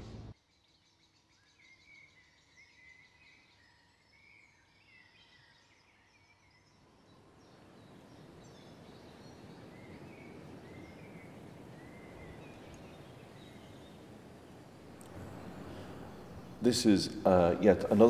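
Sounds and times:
quiet outdoor ambience: 0.0 - 18.0
faint birdsong chirps: 0.3 - 18.0.

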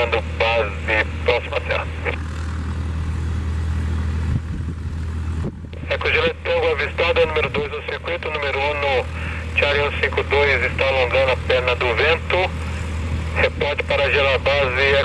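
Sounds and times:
radio chatter through scanner: 0.0 - 2.3, 5.8 - 12.6, 13.3 - 15.0
radio hiss: 0.0 - 2.4, 5.8 - 15.0
low hum: 0.0 - 15.0.

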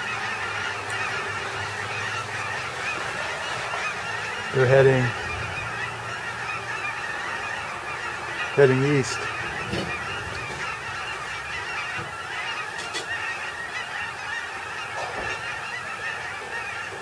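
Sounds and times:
flock of geese honking: 0.0 - 17.0.

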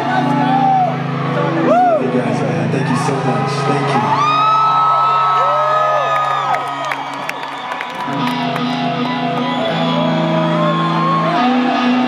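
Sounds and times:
crowd cheering and whistling: 0.0 - 12.0.

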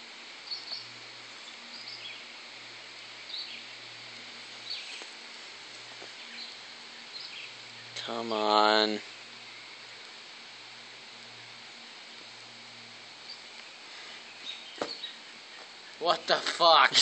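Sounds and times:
steady background hiss: 0.0 - 17.0
high bird chirps: 14.2 - 16.0.

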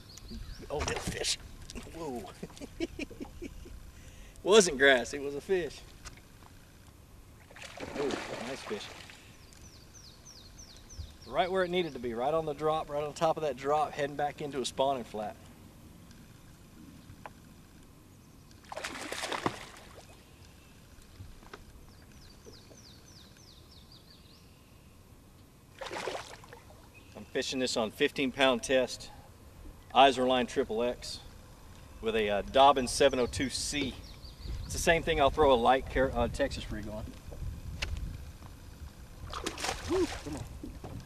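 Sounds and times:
steady low rumble: 1.4 - 6.0
fish splashing at water surface: 7.5 - 9.2, 18.7 - 20.1, 25.8 - 26.7, 39.3 - 40.5.

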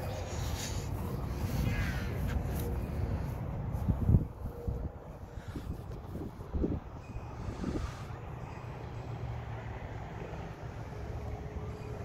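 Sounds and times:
low wind rumble on microphone: 0.0 - 8.4.

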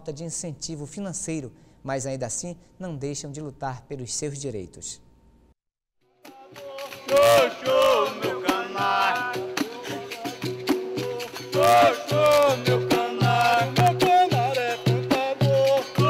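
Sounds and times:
person singing: 6.2 - 16.0
hand drum: 6.4 - 16.0.

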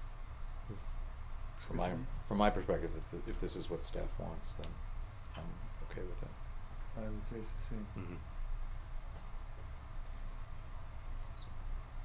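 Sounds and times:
steady low hum: 0.0 - 12.0
faint high squeaks: 11.1 - 11.6.

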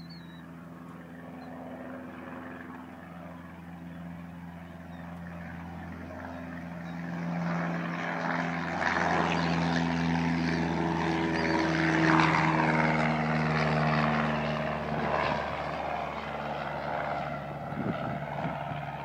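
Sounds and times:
propeller airplane engine: 0.0 - 19.0.

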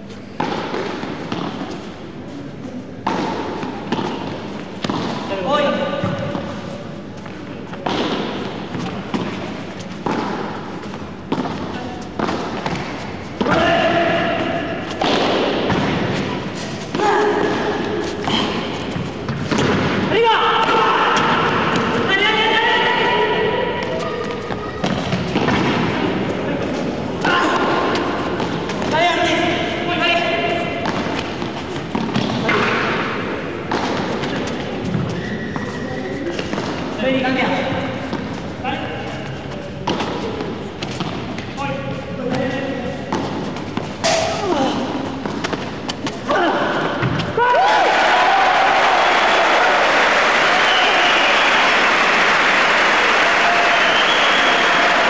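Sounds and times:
ball thudding off paddles and walls: 14.9 - 22.0, 24.8 - 26.1
people talking: 22.1 - 28.0.

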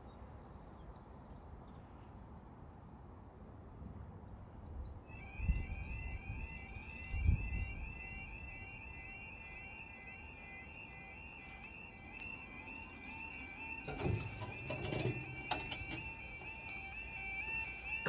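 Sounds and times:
warbling crossing alarm: 5.1 - 18.0.

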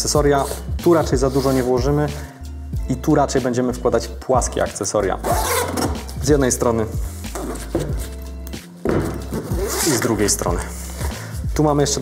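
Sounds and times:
background music: 0.0 - 12.0
zipper being pulled open: 5.2 - 6.0, 9.4 - 10.2.

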